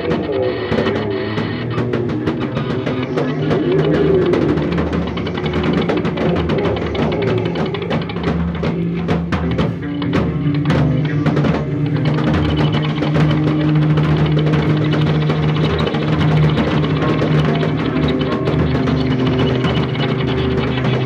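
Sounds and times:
drum kit with cymbals: 0:00.0 - 0:21.0
rock band playing live: 0:00.0 - 0:21.0
sustained low notes: 0:00.0 - 0:21.0.

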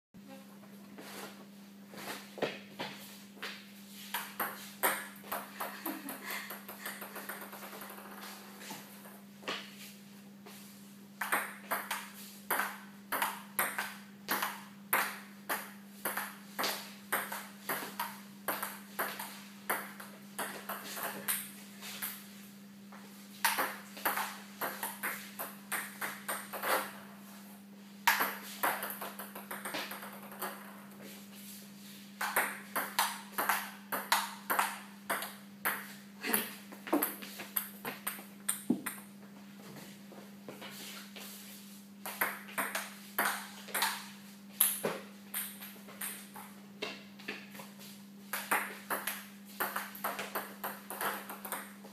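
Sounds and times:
table tennis ball hits: 0:04.1 - 0:08.3, 0:11.2 - 0:21.5, 0:23.4 - 0:26.9, 0:28.1 - 0:30.7, 0:32.2 - 0:35.9, 0:36.9 - 0:39.1, 0:42.1 - 0:46.5, 0:48.3 - 0:51.8.

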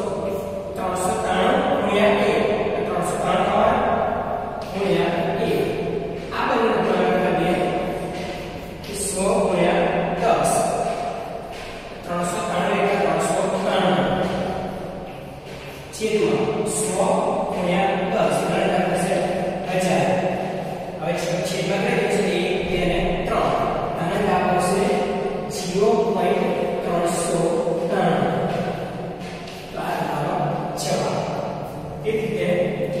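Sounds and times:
man speaking in echoing room: 0:00.0 - 0:33.0.

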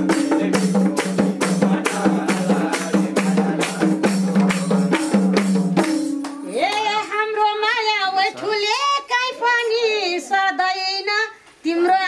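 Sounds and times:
woman singing folk song: 0:06.6 - 0:12.0.

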